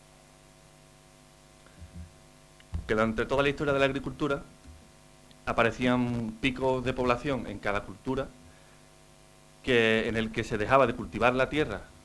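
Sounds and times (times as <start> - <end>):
electrical mains hum: 0.0 - 12.0
soft low bump: 1.8 - 3.1
man speaking: 2.8 - 4.5, 5.5 - 8.4, 9.7 - 11.9.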